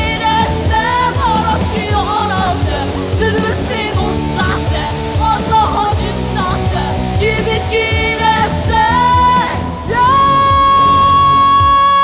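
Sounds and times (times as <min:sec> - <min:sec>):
girl singing lead: 0:00.0 - 0:12.0
live rock band: 0:00.0 - 0:12.0.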